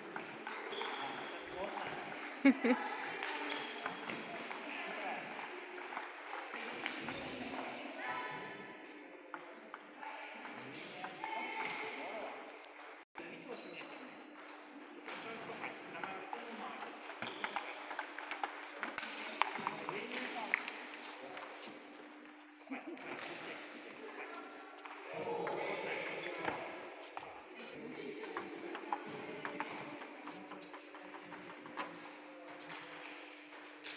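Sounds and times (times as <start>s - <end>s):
table tennis balls clicking: 0.1s - 2.1s, 3.0s - 7.7s, 13.8s - 22.4s, 28.2s - 33.7s.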